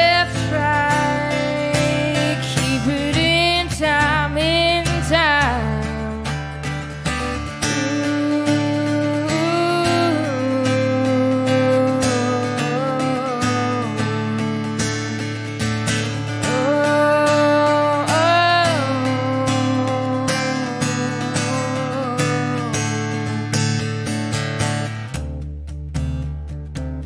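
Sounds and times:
woman singing: 0.0s - 24.1s
acoustic guitar: 0.0s - 27.0s.

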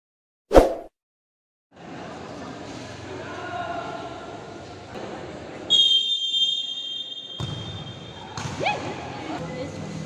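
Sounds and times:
referee's whistle blast: 5.7s - 8.1s.

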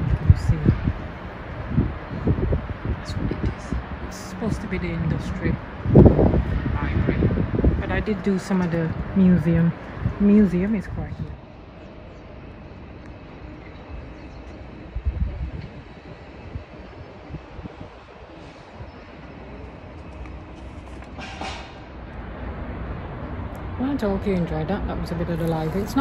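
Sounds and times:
wind on phone microphone: 0.0s - 11.6s, 13.1s - 22.3s, 23.3s - 26.0s.

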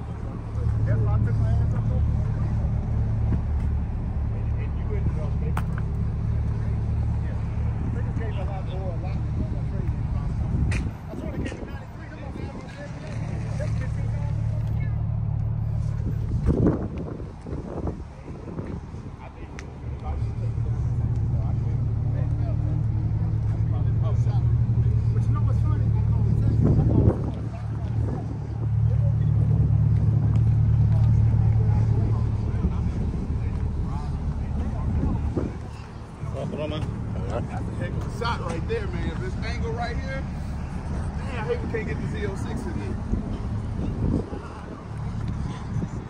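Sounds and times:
car engine humming: 0.0s - 46.0s
faint voices: 0.0s - 46.0s.

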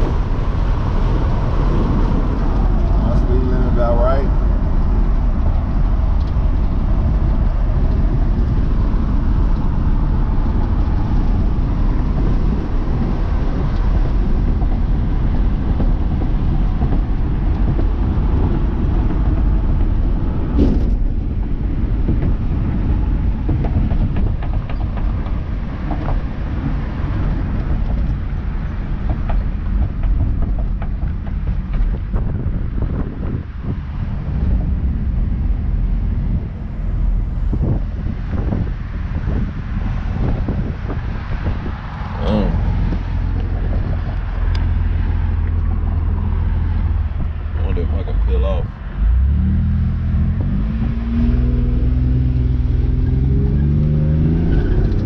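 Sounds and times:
car driving rumble: 0.0s - 55.0s.

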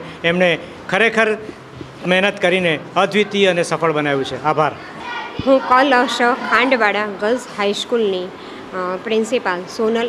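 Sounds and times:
man talking: 0.0s - 4.8s
woman speaking: 5.4s - 10.0s.

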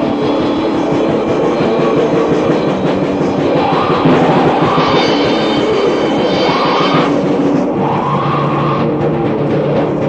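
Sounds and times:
distorted black metal music: 0.0s - 10.0s.

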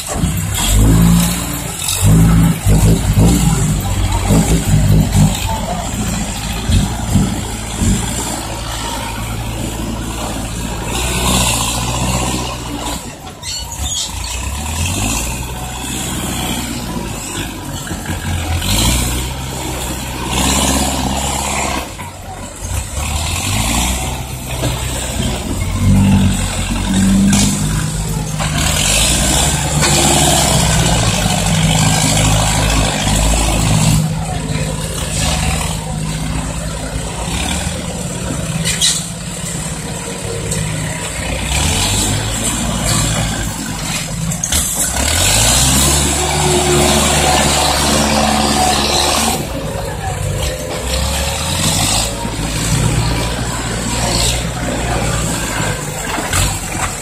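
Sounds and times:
dump truck diesel engine: 0.0s - 57.0s.

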